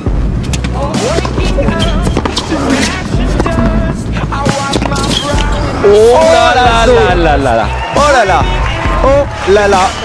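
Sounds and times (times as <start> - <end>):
background music with heavy bass: 0.0 - 10.0
shoe squeaks: 0.4 - 5.6.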